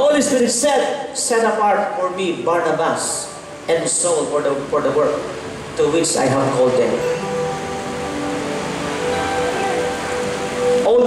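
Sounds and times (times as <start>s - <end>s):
steady hiss: 0.0s - 11.0s
sustained keyboard chords: 2.0s - 11.0s.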